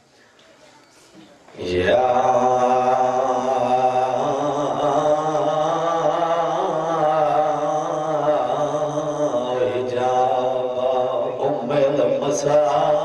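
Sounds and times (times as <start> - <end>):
man chanting: 1.6 - 13.0.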